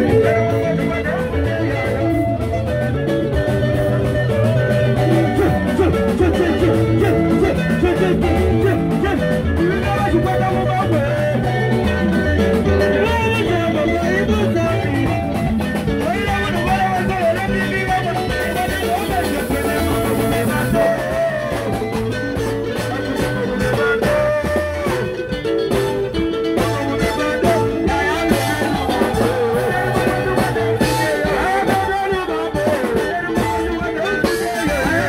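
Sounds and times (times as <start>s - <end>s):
person singing: 0.0s - 25.5s, 26.4s - 35.0s
live band music: 0.0s - 35.0s.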